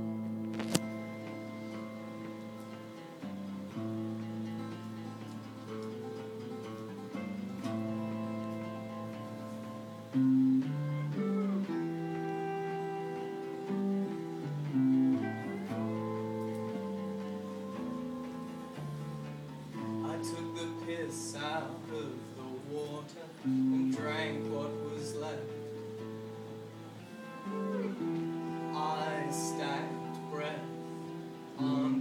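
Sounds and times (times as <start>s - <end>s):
acoustic guitars playing: 0.0s - 32.0s.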